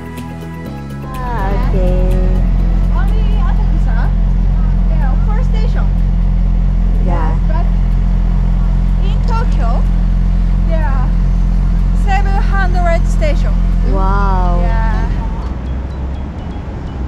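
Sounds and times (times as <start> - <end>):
vehicle engine running: 0.0 - 17.0.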